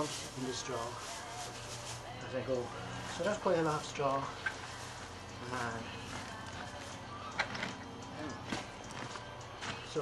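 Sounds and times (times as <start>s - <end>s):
dry straw rustling: 0.0s - 7.0s.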